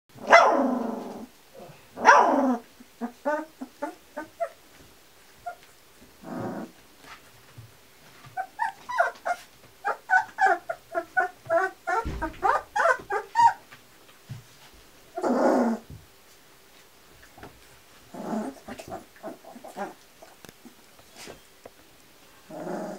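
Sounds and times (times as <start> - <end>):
puppies yelping and yipping: 8.3 - 13.7.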